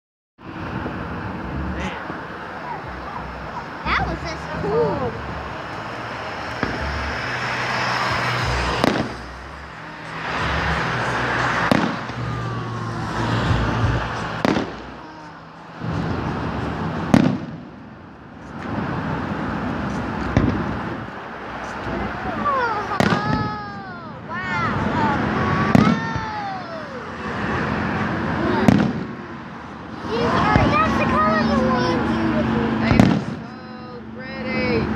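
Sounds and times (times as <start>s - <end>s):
fireworks shells bursting: 6.4s - 12.4s, 13.9s - 17.8s.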